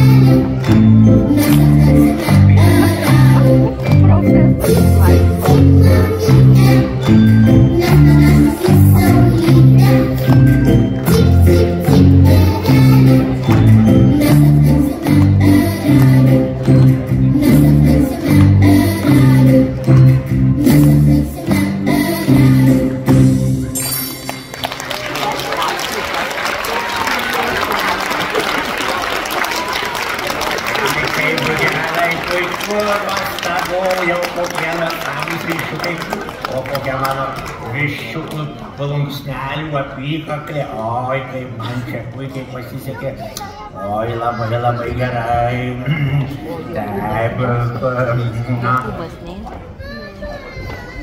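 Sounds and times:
audience applauding: 24.2s - 37.8s
children chattering and calling out: 42.4s - 47.1s, 48.1s - 51.0s.

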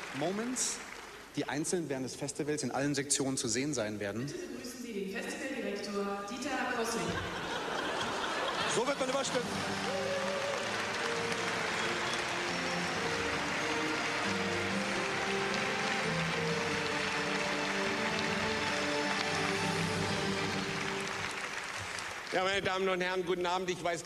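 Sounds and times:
audience applauding: 0.0s - 1.4s, 7.3s - 23.2s
music with long held notes: 8.8s - 22.2s.

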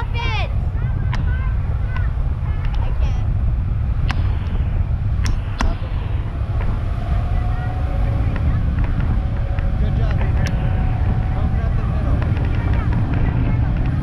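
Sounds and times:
boat engine running: 0.0s - 14.0s
wind rumbling on microphone: 0.0s - 14.0s.

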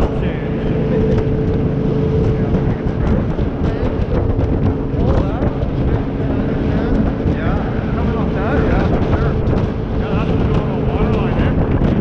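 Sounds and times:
boat engine running: 0.0s - 12.0s
wind buffeting microphone: 0.0s - 12.0s.

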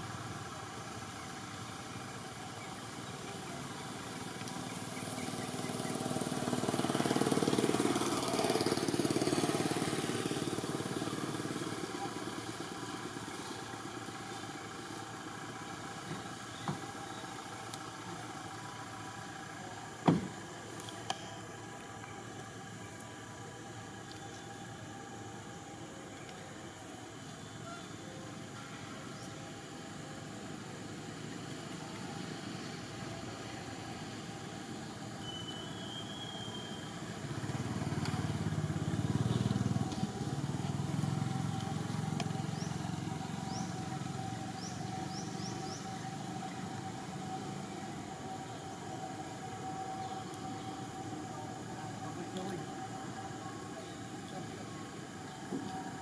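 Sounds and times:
outdoor background hum: 0.0s - 56.0s
vehicle engine rumble: 0.0s - 56.0s.

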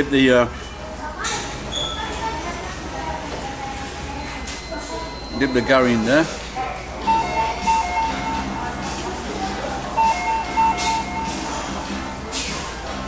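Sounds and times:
electronic chime tune: 7.1s - 8.7s, 10.0s - 12.1s.

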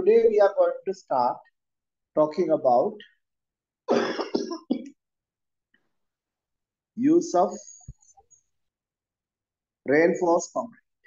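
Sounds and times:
man coughing: 3.9s - 4.9s.

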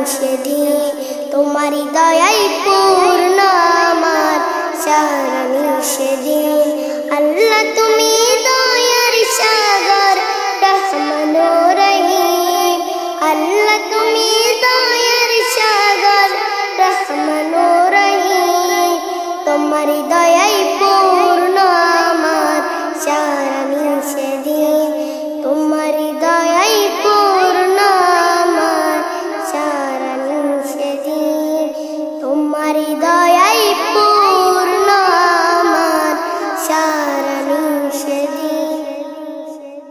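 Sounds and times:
boy singing: 0.0s - 39.9s.

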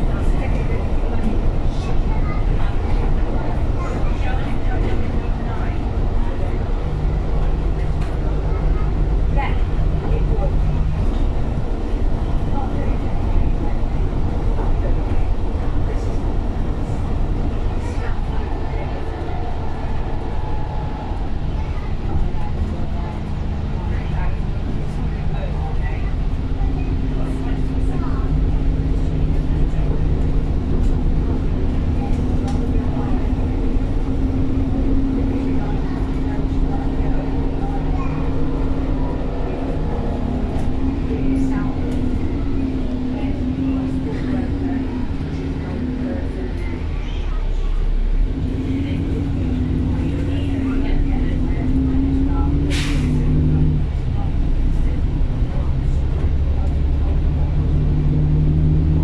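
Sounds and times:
bus engine drone with whine: 0.0s - 59.0s.

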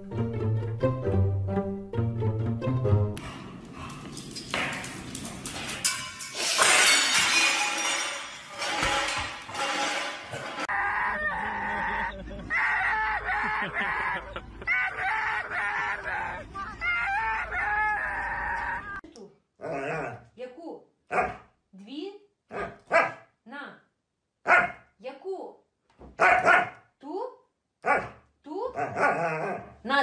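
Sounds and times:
huskies howling: 10.6s - 19.0s.

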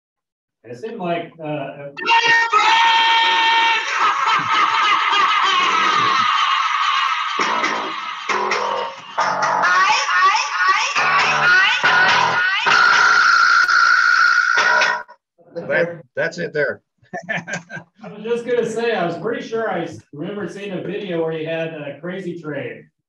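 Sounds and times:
loudspeaker blaring music: 7.4s - 15.0s.

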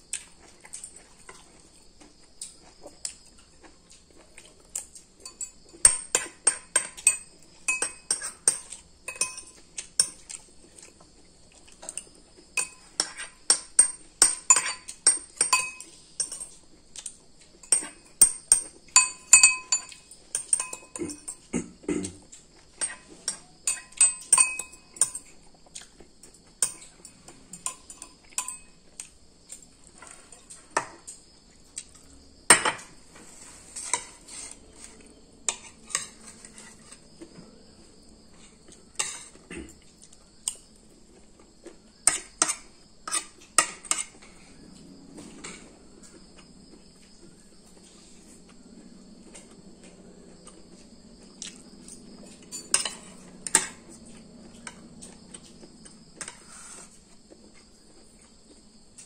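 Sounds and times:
cutlery clinking on ceramic bowl: 5.2s - 10.4s, 11.9s - 16.6s, 17.6s - 21.5s, 22.8s - 25.4s, 26.6s - 28.8s, 32.5s - 33.0s, 33.8s - 37.0s, 39.0s - 39.4s, 42.0s - 44.2s, 51.4s - 54.9s.

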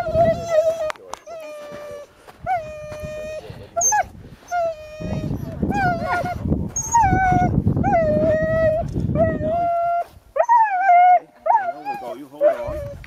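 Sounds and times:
huskies howling and whining: 0.0s - 13.0s.

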